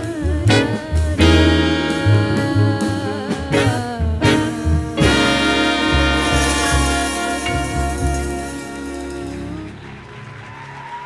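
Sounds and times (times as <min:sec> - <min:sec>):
women singing: 0:00.0 - 0:05.5
upright bass: 0:00.0 - 0:09.8
drum kit: 0:00.0 - 0:09.9
alto saxophone: 0:00.0 - 0:10.1.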